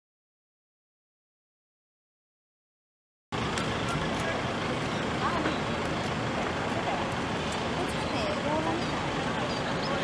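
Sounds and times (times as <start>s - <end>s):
road traffic: 3.3s - 10.0s
distant voices: 3.4s - 10.0s.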